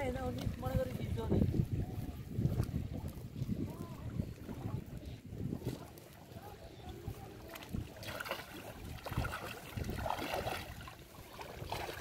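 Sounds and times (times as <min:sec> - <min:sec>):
feet on wet mud: 0:00.0 - 0:12.0
feet splashing in shallow water: 0:00.0 - 0:12.0
wind buffeting microphone: 0:00.0 - 0:12.0.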